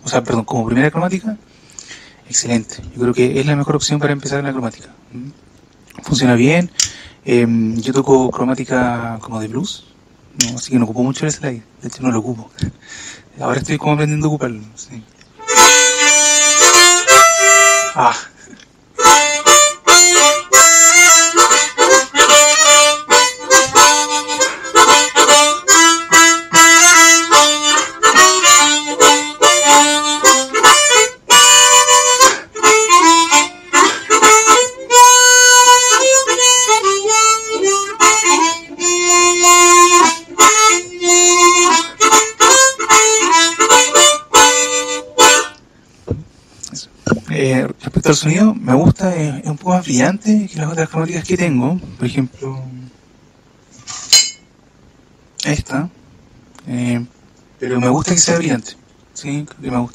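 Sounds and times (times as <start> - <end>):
harmonica playing: 15.4 - 45.8.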